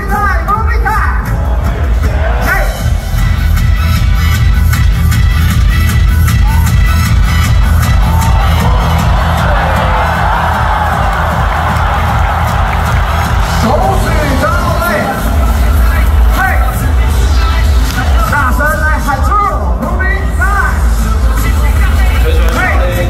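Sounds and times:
dance music with heavy bass: 0.0 - 23.0
crowd cheering: 6.2 - 18.5.

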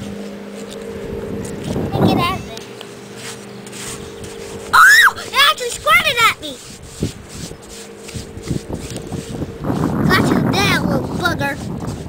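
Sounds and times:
low motor hum: 0.0 - 12.0
loud high-pitched cries: 4.8 - 5.4.

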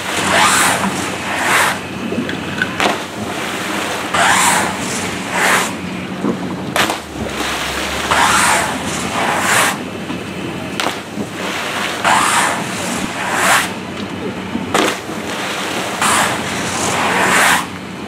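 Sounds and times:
skis rushing down wet ramp: 0.0 - 2.1, 2.8 - 5.9, 6.7 - 10.0, 10.8 - 13.9, 14.6 - 17.8
steady low hum: 0.0 - 18.0
splashing into pool: 6.7 - 10.1
sharp knocks: 10.8 - 11.3.

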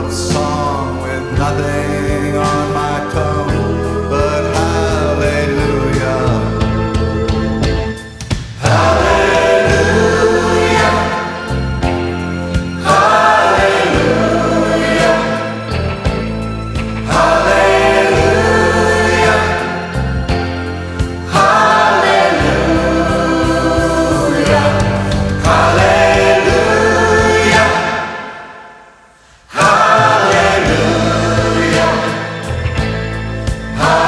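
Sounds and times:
sustained bass: 0.0 - 28.0, 29.6 - 34.0
choir singing with instruments: 0.0 - 34.0.

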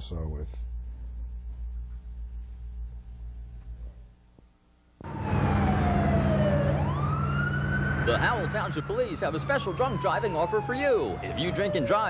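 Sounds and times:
low hum: 0.4 - 11.2
police siren wailing: 5.0 - 12.0.

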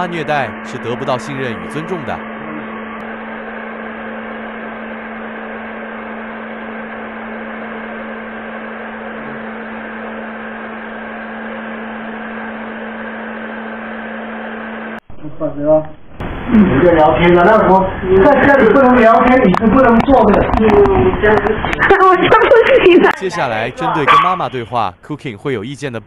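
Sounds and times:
blow dryer running: 0.0 - 15.0, 16.2 - 24.4.

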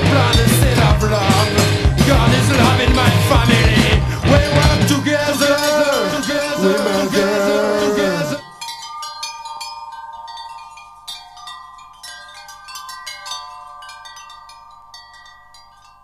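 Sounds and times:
loud band music: 0.0 - 8.4
wind chimes ringing: 4.2 - 16.0.

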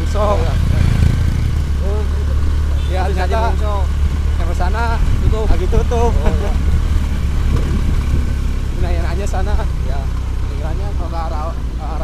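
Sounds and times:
vehicle engine and road noise: 0.0 - 12.0
person speaking: 1.7 - 6.7
wind on microphone: 4.9 - 8.9.

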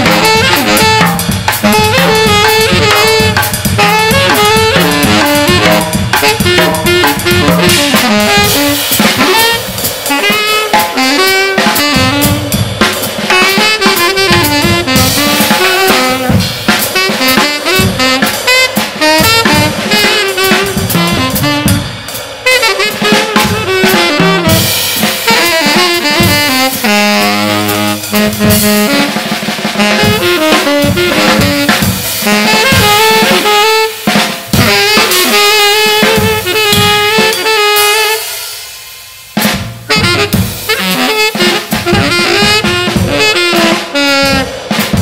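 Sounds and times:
drum kit hits and crashes: 0.0 - 45.0
tenor saxophone playing: 0.0 - 45.0.

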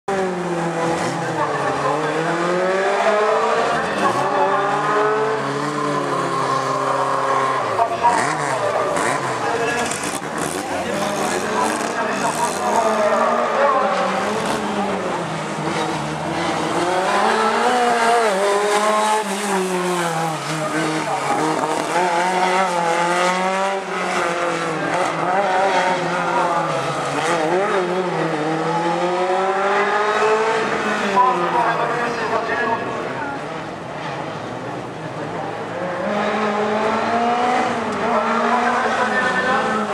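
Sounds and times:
car engine revving: 0.1 - 39.9.

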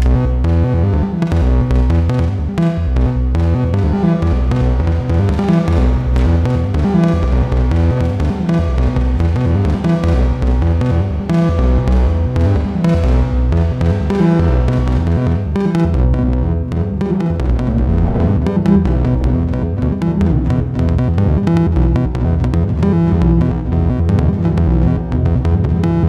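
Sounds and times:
modular synthesizer sequence: 17.4 - 20.1.

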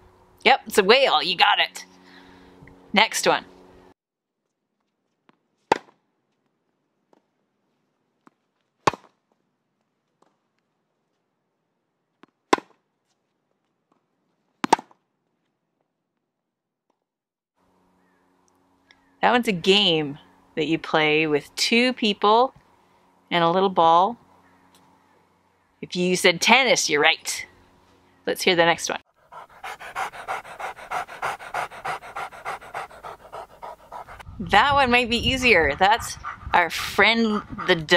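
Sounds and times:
tennis racket hitting ball: 12.2 - 12.8, 14.6 - 14.9
dog panting: 29.1 - 37.9.

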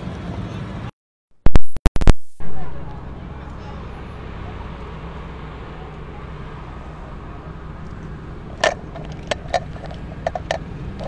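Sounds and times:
vehicle engines rumbling: 0.0 - 0.9, 2.4 - 11.0.

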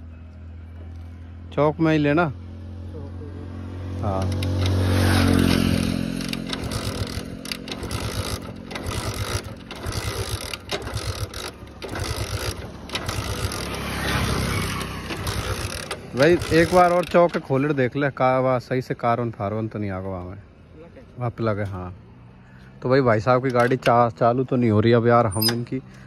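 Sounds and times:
motorcycle engine kick-started: 4.0 - 17.9.

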